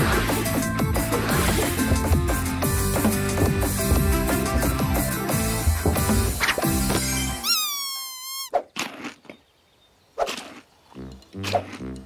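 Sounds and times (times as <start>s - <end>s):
light music with bouncing bass: 0.0s - 7.5s
cartoon chick squawking: 7.4s - 8.6s
gliding cartoon whistle: 7.4s - 8.6s.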